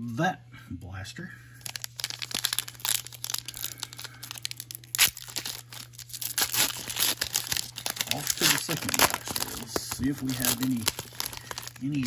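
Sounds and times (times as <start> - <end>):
packaging crinkling and tearing: 1.6 - 12.0.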